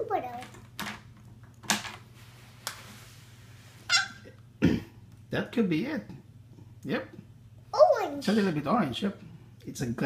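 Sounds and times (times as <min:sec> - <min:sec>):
low steady hum: 0:00.0 - 0:10.0
child squealing: 0:03.9 - 0:04.3.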